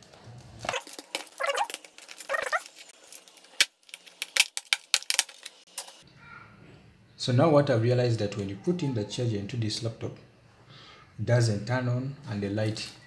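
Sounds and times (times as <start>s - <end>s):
plastic cover clicks and snaps: 0.6s - 6.0s.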